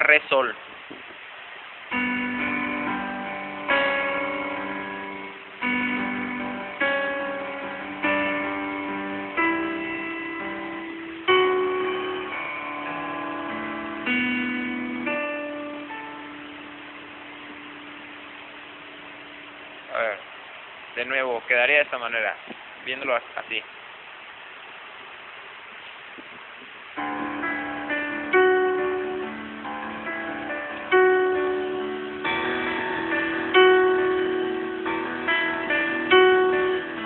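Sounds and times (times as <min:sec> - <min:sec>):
piano chords: 0:00.0 - 0:23.6, 0:26.8 - 0:37.0.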